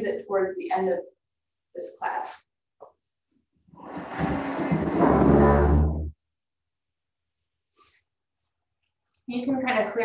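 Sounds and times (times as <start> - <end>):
chair dragged across floor: 3.7 - 6.2.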